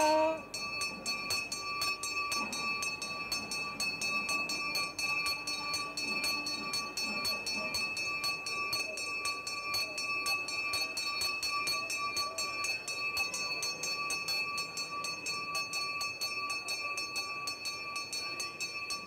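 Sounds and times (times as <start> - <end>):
hand bell ringing fast: 0.0 - 19.0.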